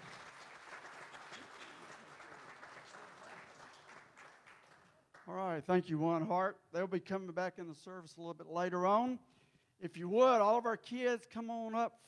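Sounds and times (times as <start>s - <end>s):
faint scattered applause: 0.0s - 5.4s.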